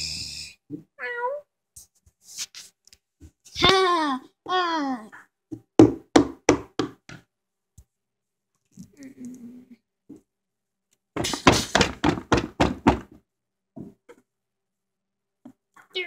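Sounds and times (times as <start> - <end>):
plastic toy knocking on floor: 5.6 - 7.2, 11.2 - 13.2.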